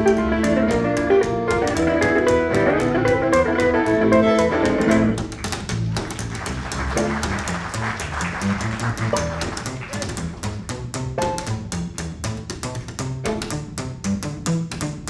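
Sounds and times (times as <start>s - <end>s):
archtop guitar chords: 0.0s - 5.2s
fiddle melody: 0.0s - 5.5s, 6.3s - 11.7s
plucked upright bass: 0.0s - 15.0s.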